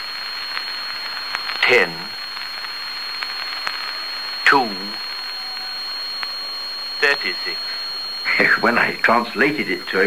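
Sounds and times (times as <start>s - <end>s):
recording hiss: 0.0s - 10.0s
high-pitched whistle tone: 4.0s - 10.0s.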